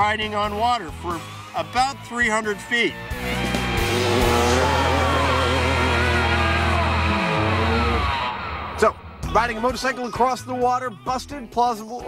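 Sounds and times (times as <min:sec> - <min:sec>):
dirt bike engine revving: 0:03.1 - 0:09.2
steady low drone: 0:03.2 - 0:09.8.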